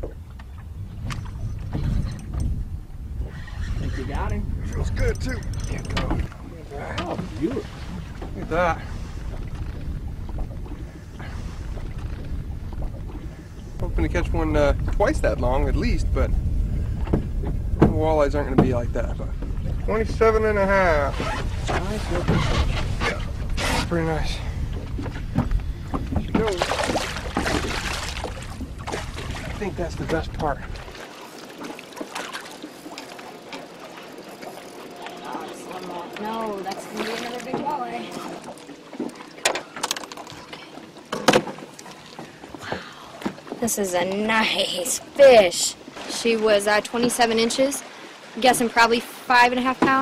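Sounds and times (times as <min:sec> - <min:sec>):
wind buffeting microphone: 0:00.0 - 0:31.1
water sloshing and splashing: 0:00.0 - 0:50.0.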